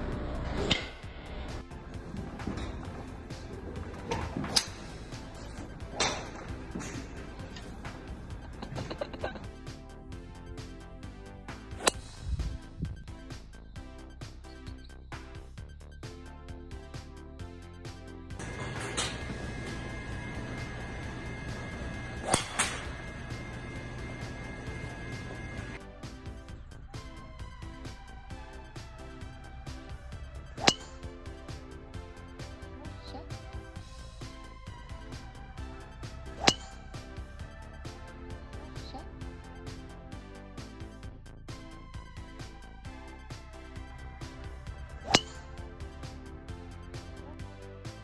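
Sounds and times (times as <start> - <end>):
background music: 0.0 - 48.0
golf club swish: 11.7 - 12.7
golf club striking ball: 30.6 - 31.0, 36.4 - 36.8, 45.0 - 45.5.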